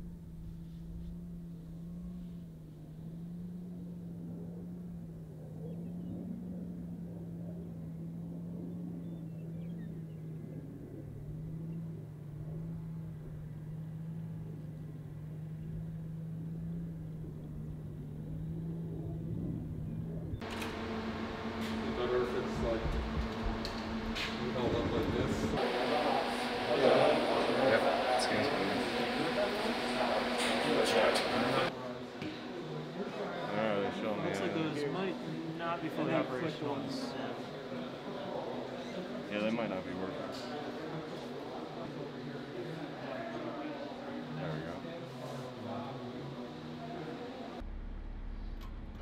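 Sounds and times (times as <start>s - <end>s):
distant military vehicles engine hum: 0.0s - 49.0s
fan-like hum: 0.0s - 49.0s
voices: 1.8s - 47.6s.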